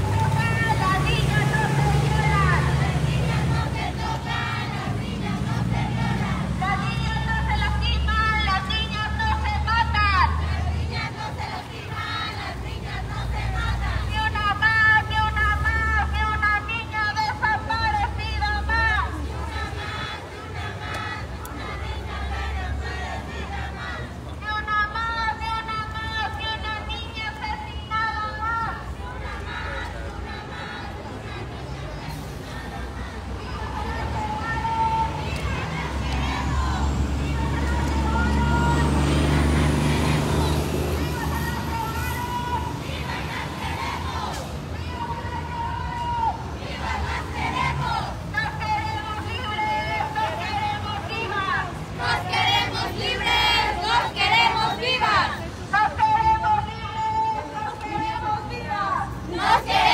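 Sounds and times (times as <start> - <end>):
engine running low rumble: 0.0 - 27.8, 28.4 - 56.6
crowd voices: 0.0 - 59.9
women shouting a protest chant: 0.0 - 59.9.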